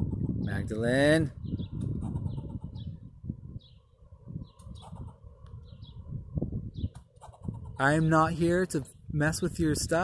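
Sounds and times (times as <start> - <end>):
squirrel chirping calls: 1.4 - 6.1.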